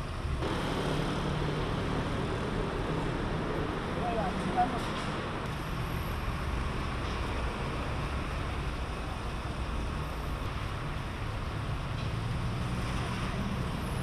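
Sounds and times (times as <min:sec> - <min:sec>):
road traffic hum: 0:00.0 - 0:14.0.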